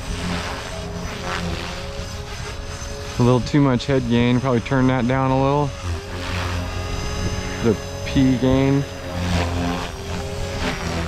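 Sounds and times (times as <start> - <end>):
electric motor whine: 0.0 - 11.0
rotor whooshing: 0.0 - 11.0.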